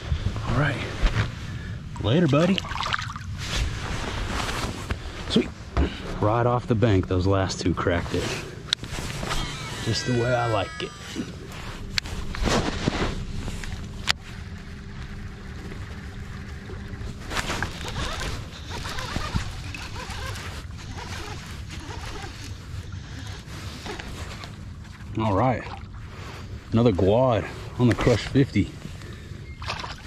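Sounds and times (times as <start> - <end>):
faint steady hum: 0.0 - 30.0
water rumble: 0.0 - 30.0
wind: 0.0 - 30.0.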